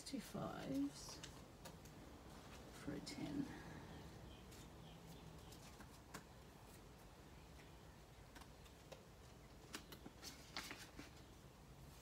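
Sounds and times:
plastic pages rustling and clicking: 0.6s - 2.7s, 4.5s - 6.8s, 8.2s - 11.3s.

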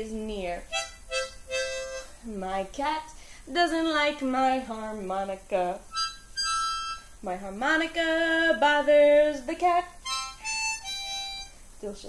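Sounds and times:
harmonica phrase: 0.6s - 2.3s, 5.9s - 7.2s, 9.9s - 11.6s
woman singing: 2.2s - 5.9s, 7.2s - 10.1s.

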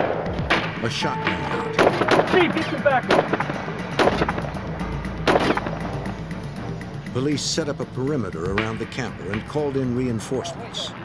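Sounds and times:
dramatic background music: 0.0s - 11.0s
gunshots: 1.8s - 4.5s, 5.2s - 5.9s
low rumble: 3.3s - 9.5s.

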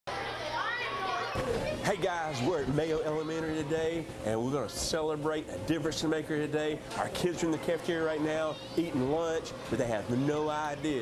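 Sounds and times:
children talking: 0.1s - 11.0s.

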